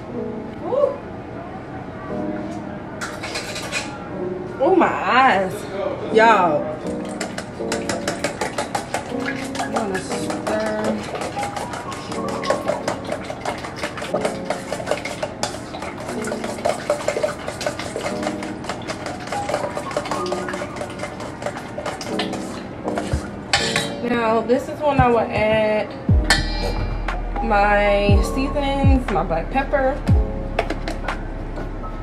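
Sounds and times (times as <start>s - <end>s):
background music: 2.1s - 32.0s
whisk clicking in metal bowl: 6.9s - 24.0s.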